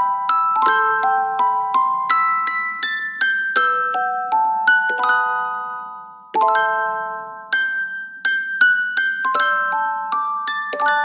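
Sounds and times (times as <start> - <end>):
music box melody: 0.0 - 11.0.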